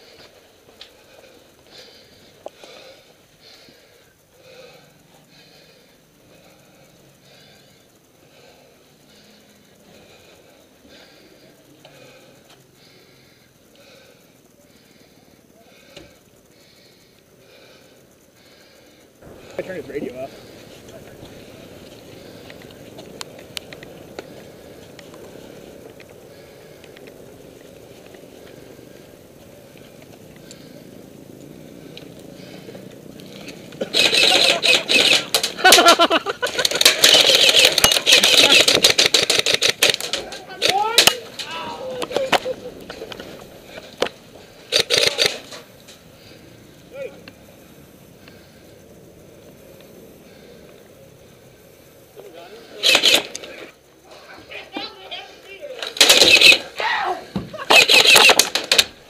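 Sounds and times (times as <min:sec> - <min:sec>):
airsoft guns firing rapidly: 0:33.9 - 0:36.0, 0:36.7 - 0:41.2, 0:44.7 - 0:45.4, 0:52.8 - 0:53.4, 0:55.9 - 0:56.7, 0:57.7 - 0:58.9
players shouting: 0:40.2 - 0:43.5, 0:56.5 - 0:58.3.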